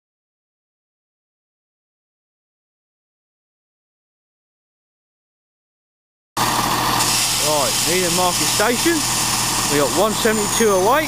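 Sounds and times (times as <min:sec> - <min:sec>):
train diesel engines running: 0:06.4 - 0:11.0.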